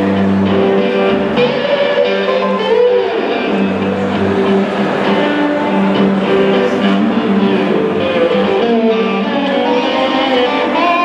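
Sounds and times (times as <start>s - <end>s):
blues band playing: 0.0s - 11.0s.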